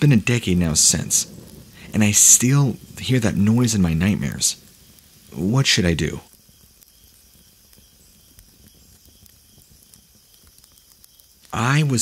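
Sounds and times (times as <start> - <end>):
faint steady hiss: 0.0 - 12.0
soft crackles and clicks: 0.0 - 12.0.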